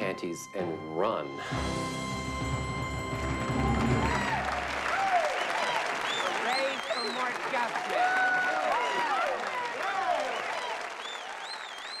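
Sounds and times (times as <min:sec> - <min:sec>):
high gliding whistles: 0:00.6 - 0:07.3
audience applauding and cheering: 0:01.4 - 0:12.0.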